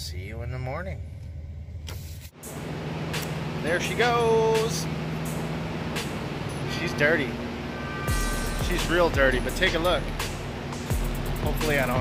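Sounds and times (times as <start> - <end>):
truck engine idling: 2.4 - 12.0.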